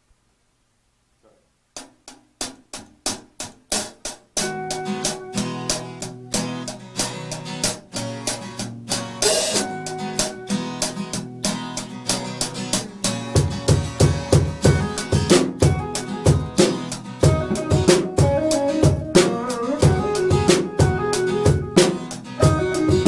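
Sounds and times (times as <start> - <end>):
drumstick count-in taps: 1.2 - 4.5
drums: 1.2 - 23.0
acoustic guitar: 1.3 - 23.0
electric guitar: 4.4 - 23.0.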